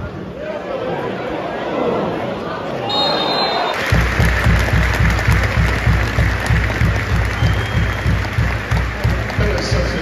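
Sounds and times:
crowd cheering and clapping: 0:03.2 - 0:10.0.

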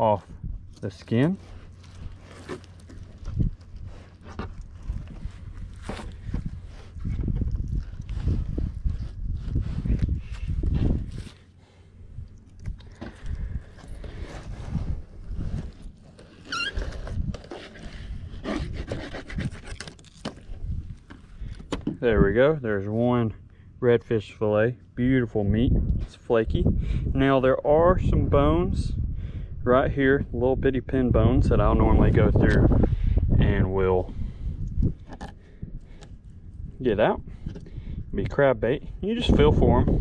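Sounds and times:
low rumbling: 0:00.0 - 0:40.0
knife scraping and rubbing: 0:15.4 - 0:20.3.

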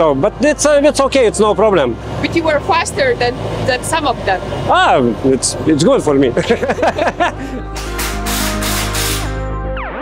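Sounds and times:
background music with held notes: 0:05.8 - 0:10.0.

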